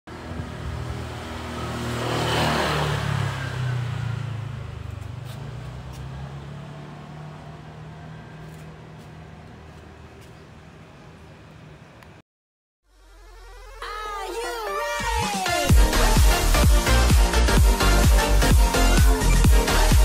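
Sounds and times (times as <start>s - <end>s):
vehicle passing by: 0.1s - 11.4s.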